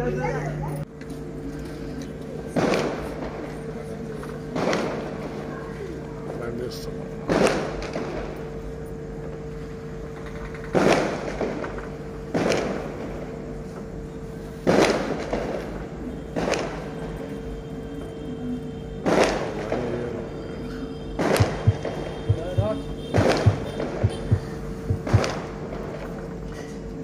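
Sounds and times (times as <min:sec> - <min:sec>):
steady low hum: 0:00.0 - 0:27.0
loud sudden booms: 0:21.2 - 0:25.6.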